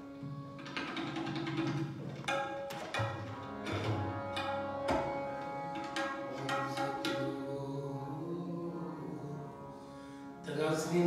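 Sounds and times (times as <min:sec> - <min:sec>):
tabla strokes: 0:00.3 - 0:07.5
harmonium chord: 0:02.3 - 0:11.0.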